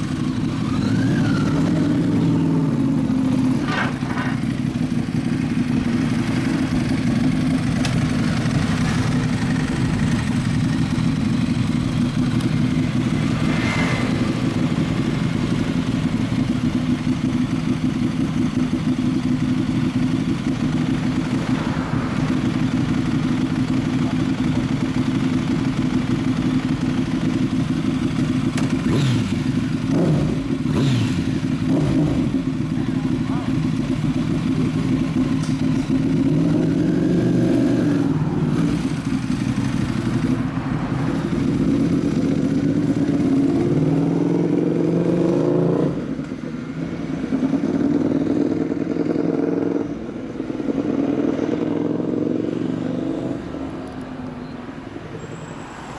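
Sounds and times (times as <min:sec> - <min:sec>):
motorcycle engine revving: 0:00.0 - 0:53.5
motorcycle engines idling: 0:00.0 - 0:54.6.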